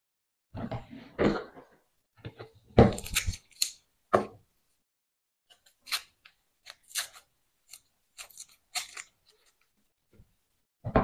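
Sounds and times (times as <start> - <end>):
knife cutting onion: 2.8 - 4.4, 5.5 - 9.6.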